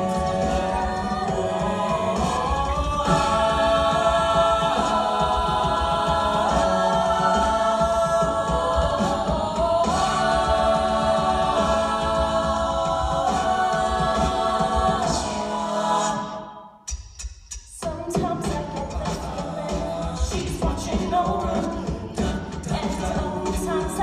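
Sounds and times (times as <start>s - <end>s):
a cappella group singing harmony: 0.0s - 16.9s, 17.7s - 24.0s.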